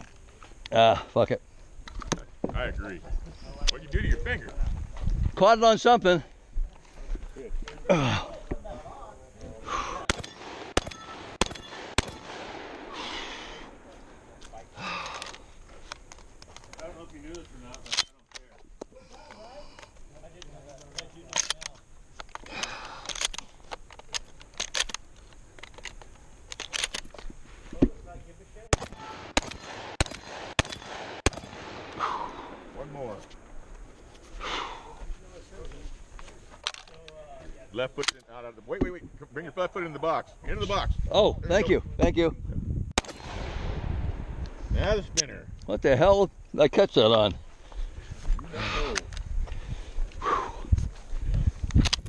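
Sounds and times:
gunshots: 10.0s - 14.4s, 28.7s - 33.2s, 43.0s - 44.4s
shotgun shells clicking into magazine: 19.8s - 27.2s, 51.7s - 52.0s.

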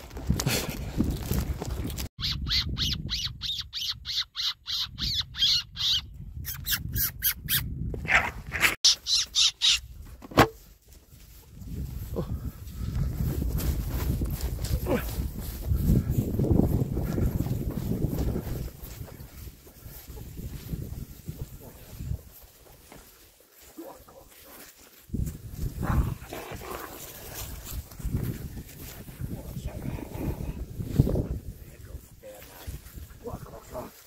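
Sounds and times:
predator call squeaking: 2.2s - 7.6s, 8.8s - 9.8s.

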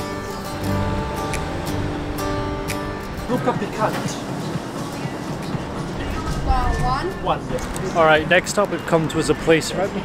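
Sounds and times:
shop and street rumble: 0.0s - 10.0s.

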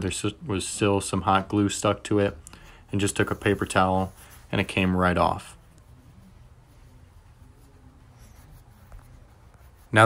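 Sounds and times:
man talking: 0.0s - 5.6s
paper towel rubbing on paint: 2.8s - 10.0s.

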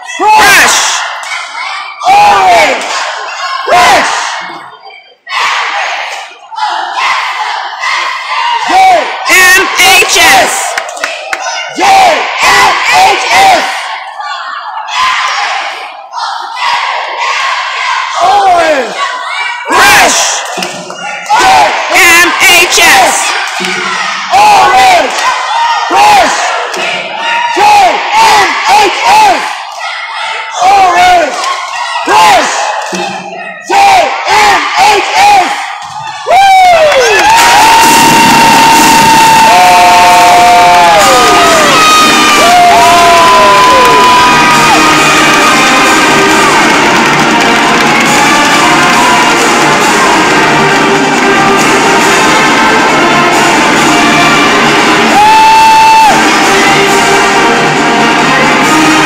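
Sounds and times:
cheerleaders shouting a chant: 0.0s - 59.0s
crowd cheering: 0.0s - 59.0s
loud music: 36.2s - 59.0s.

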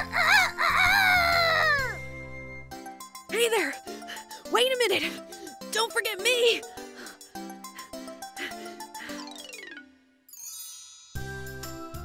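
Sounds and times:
rooster crowing: 0.0s - 2.0s
light background music: 0.0s - 12.0s.

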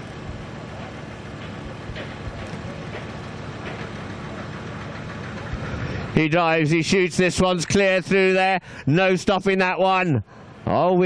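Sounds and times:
low rumbling: 0.0s - 6.4s.

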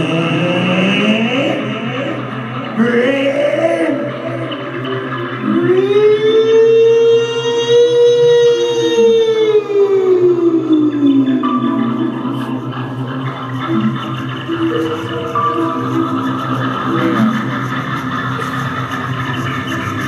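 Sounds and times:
low electronic drone: 0.0s - 20.0s
gliding electronic tone: 9.1s - 20.0s.

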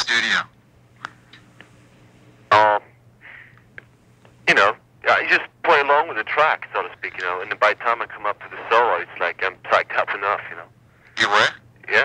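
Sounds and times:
telephone line hum and hiss: 0.0s - 12.0s
faint breath: 3.2s - 3.7s, 10.8s - 11.2s.

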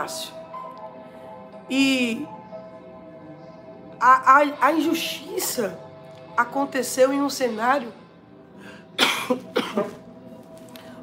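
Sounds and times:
soft background music: 0.0s - 11.0s
woman coughing: 9.0s - 10.0s.

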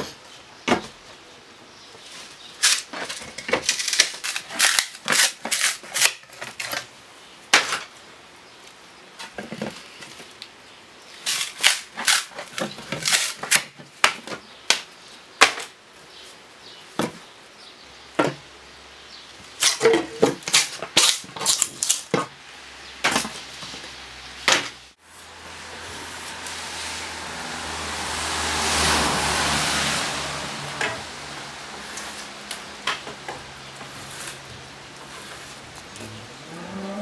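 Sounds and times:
drawknife scraping wood: 2.6s - 6.8s, 33.8s - 36.0s.

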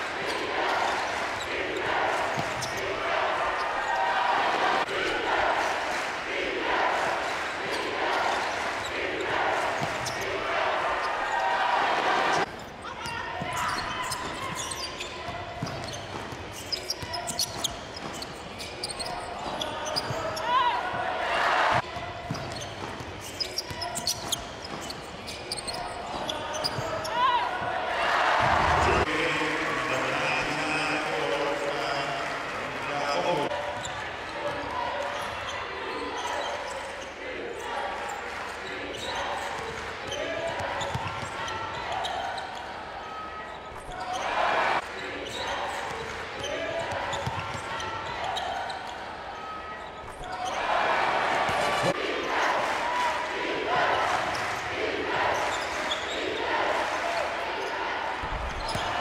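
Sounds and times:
crowd voices echoing: 0.0s - 59.0s.

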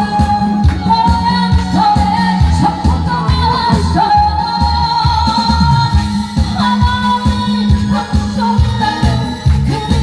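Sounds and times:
amplified accompaniment with steady beat: 0.0s - 10.0s
woman singing into a microphone: 0.0s - 10.0s.

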